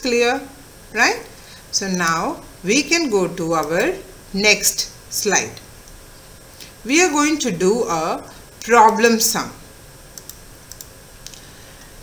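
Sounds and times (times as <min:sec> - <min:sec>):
faint computer clicks: 0:10.1 - 0:11.9.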